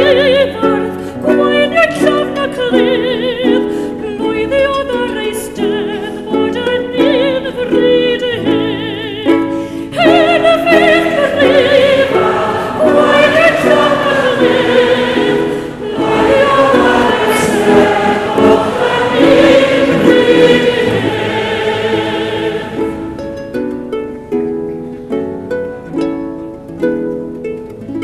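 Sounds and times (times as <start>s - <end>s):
soprano singing with vibrato: 0.0s - 23.2s
plucked harp: 0.0s - 28.0s.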